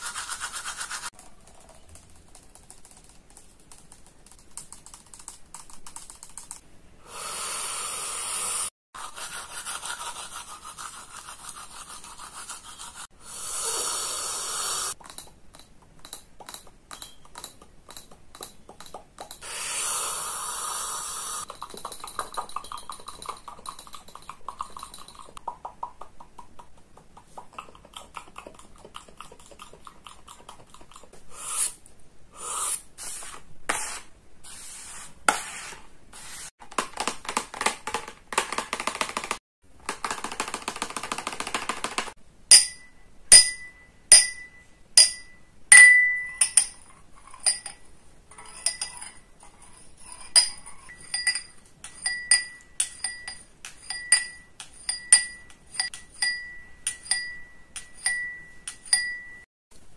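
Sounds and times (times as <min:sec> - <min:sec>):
breathy hiss into cup: 0:07.0 - 0:08.7, 0:13.2 - 0:15.0, 0:19.4 - 0:21.5, 0:31.3 - 0:33.3
mouth clicks and pops: 0:23.3 - 0:31.7
champagne glasses clinking: 0:42.5 - 0:46.8.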